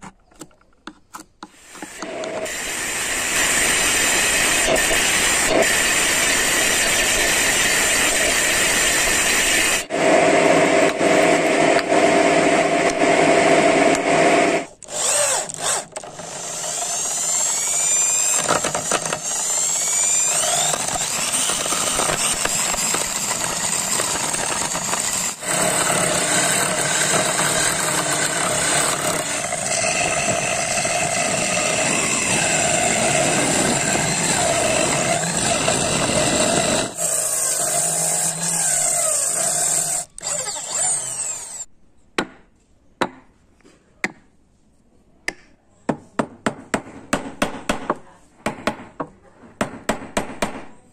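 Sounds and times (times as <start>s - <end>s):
electric drill whining: 1.7s - 41.7s
table saw cutting wood: 1.7s - 41.7s
chisel scraping turning wood: 14.8s - 41.6s.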